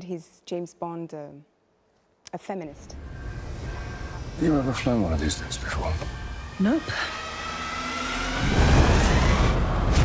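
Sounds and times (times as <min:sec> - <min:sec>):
aircraft engine roar: 0:02.8 - 0:09.9.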